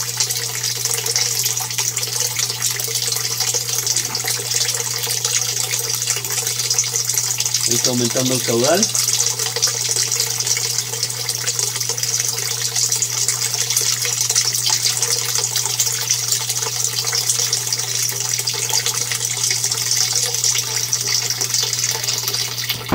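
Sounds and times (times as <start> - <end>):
water pouring into tank: 0.0 - 22.9
water splashing and bubbling: 0.2 - 22.9.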